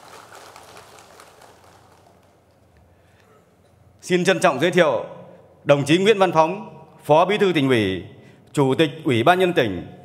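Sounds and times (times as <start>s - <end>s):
audience applauding: 0.0s - 2.4s.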